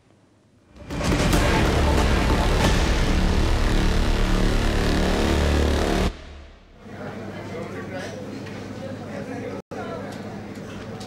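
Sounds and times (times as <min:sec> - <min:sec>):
news theme music: 0:00.7 - 0:07.0
deep bass rumble: 0:00.7 - 0:07.3.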